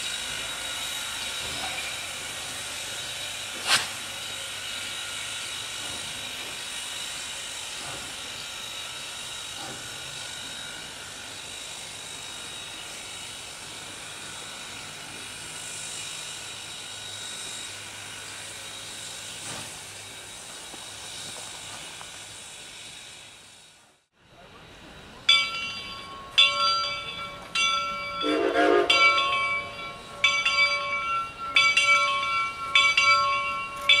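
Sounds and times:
steam hissing: 0.0s - 25.1s
steam whistle blasts: 28.2s - 29.0s.

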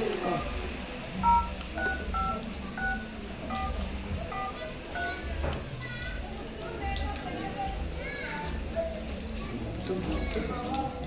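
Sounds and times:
telephone keypad beeps: 1.2s - 5.2s.

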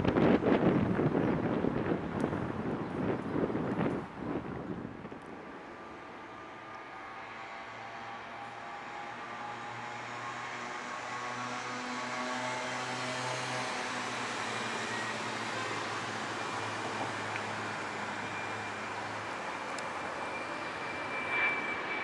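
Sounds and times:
jet airliner rushing and whining: 0.0s - 22.0s.

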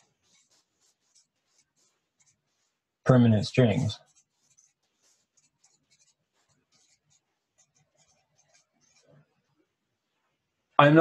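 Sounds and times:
marker squeaking on board: 0.0s - 2.8s, 3.6s - 9.2s.

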